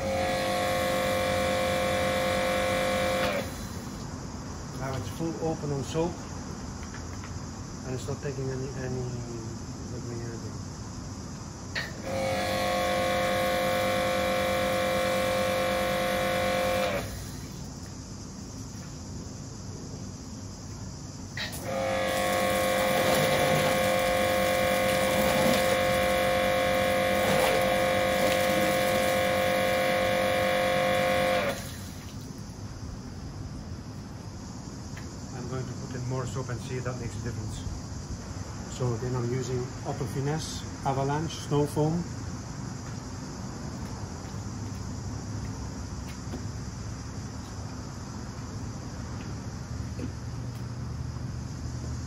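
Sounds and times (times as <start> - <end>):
pressure washer motor whining: 0.0 - 4.0, 11.8 - 17.7, 21.4 - 32.2.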